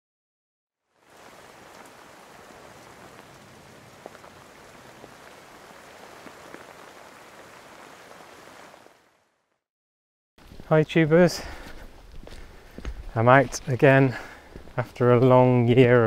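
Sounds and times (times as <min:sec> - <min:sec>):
rain falling: 0:00.9 - 0:09.6.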